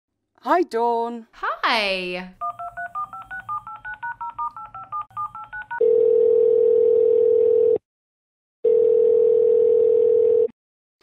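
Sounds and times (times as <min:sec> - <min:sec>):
touch-tone keypad beeps: 0:02.4 - 0:05.9
telephone line tone: 0:02.4 - 0:07.8, 0:08.6 - 0:10.6.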